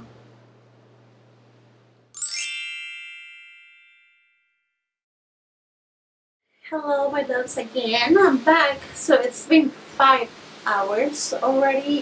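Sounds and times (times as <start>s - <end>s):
glittering chime sweep: 2.2s - 4.2s
bell-like ringing tones: 2.2s - 4.6s.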